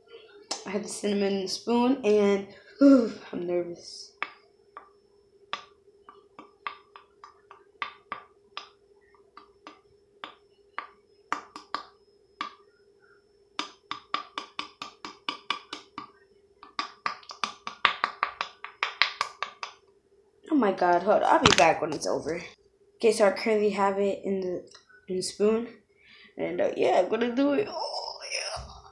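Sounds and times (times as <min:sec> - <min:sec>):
faint steady hum: 0:00.0 - 0:28.9.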